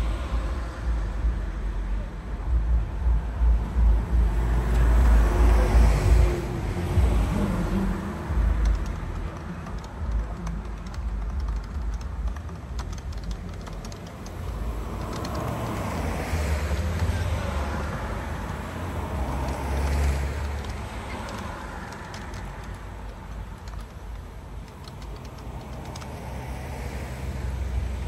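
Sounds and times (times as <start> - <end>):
low rumble: 0.0 - 9.3
road traffic passing: 0.0 - 28.0
keyboard typing clicks: 8.4 - 26.6.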